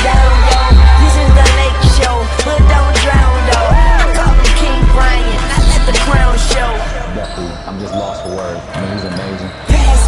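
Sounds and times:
players' voices: 0.0 - 10.0.

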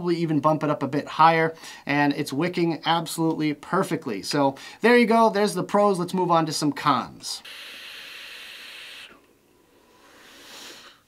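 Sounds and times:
airy hiss of air drawn through: 7.4 - 11.0.

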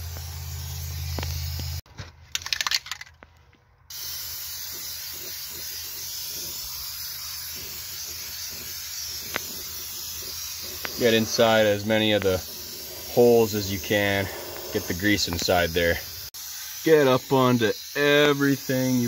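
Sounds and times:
aerosol can spraying hiss: 0.0 - 1.8, 3.9 - 19.0.

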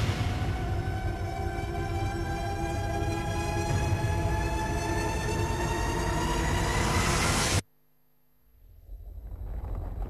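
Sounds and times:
low rumble: 8.7 - 10.0.

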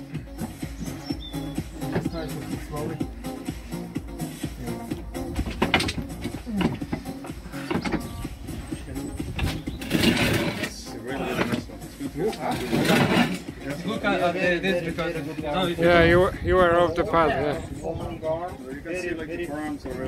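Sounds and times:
background music with bass: 0.0 - 20.0.

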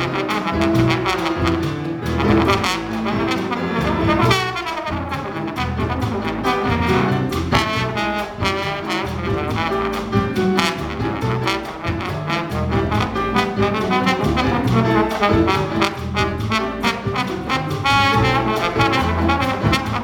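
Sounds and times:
drums: 0.0 - 20.0
piano: 0.0 - 20.0
trombone solo: 0.0 - 20.0.

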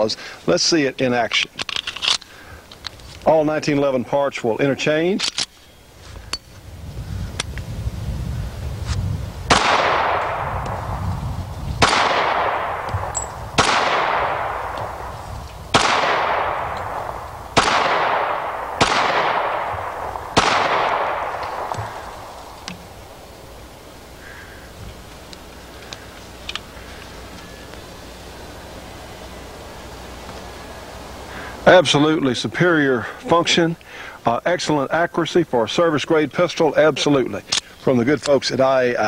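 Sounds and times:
gunshot echo: 9.5 - 11.0, 11.8 - 15.1, 15.7 - 22.6
pistol shots: 9.5 - 11.0, 11.8 - 22.9.

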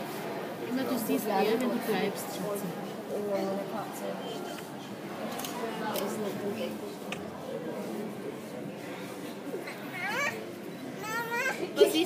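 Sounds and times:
murmur of background voices: 0.0 - 12.0.

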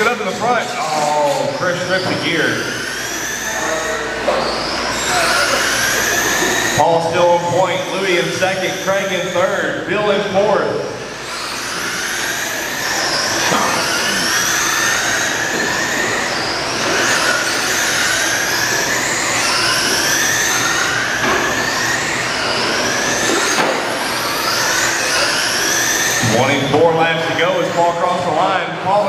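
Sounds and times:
rc truck motors whining: 0.0 - 29.0.

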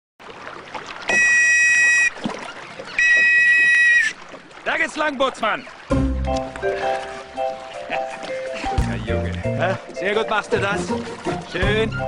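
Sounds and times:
shrill whistle blasts: 1.1 - 2.1, 3.0 - 4.1.

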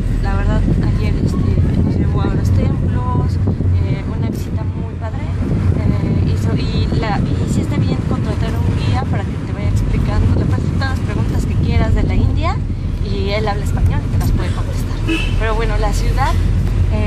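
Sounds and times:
car road and engine rumble: 0.0 - 17.0
woman talking: 0.2 - 17.0.

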